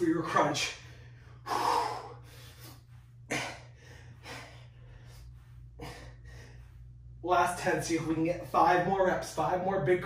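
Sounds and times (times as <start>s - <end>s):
man breathing hard: 0.8s - 7.1s.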